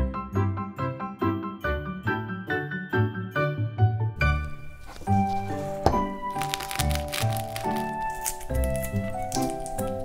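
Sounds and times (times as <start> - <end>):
background music: 0.0 - 10.0
fine crackling of egg shell: 4.5 - 10.0
egg shell cracking: 4.8 - 10.0.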